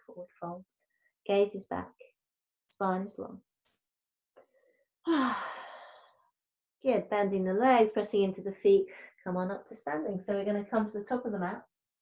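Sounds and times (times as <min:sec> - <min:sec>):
woman sighing: 0:05.1 - 0:06.0.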